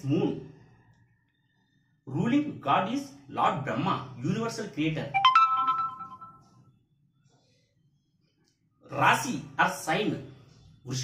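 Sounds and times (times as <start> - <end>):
rising electronic chime: 5.2 - 6.4.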